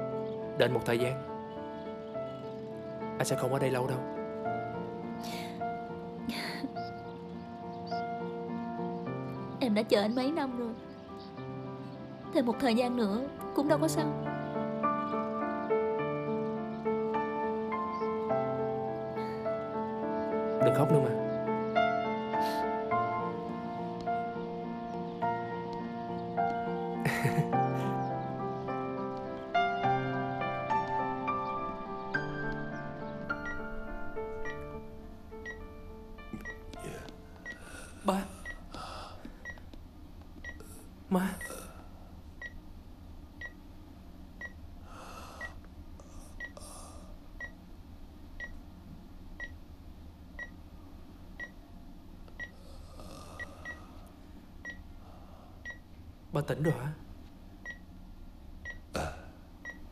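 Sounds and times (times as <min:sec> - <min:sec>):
soft keyboard music: 0:00.0 - 0:41.8
woman sobbing: 0:06.3 - 0:06.8
sniff: 0:22.4 - 0:22.7
patient monitor beeping: 0:33.4 - 0:34.8, 0:35.4 - 0:38.7, 0:39.4 - 0:39.7, 0:40.4 - 0:41.7, 0:42.4 - 0:42.6, 0:43.4 - 0:43.6, 0:46.4 - 0:46.6, 0:47.4 - 0:47.6, 0:48.4 - 0:48.6, 0:52.4 - 0:52.6, 0:53.4 - 0:53.9, 0:54.6 - 0:54.9, 0:55.6 - 0:55.8, 0:57.6 - 0:57.9, 0:58.7 - 0:58.9, 0:59.7 - 0:59.9
soft human sounds: 0:58.9 - 0:59.4.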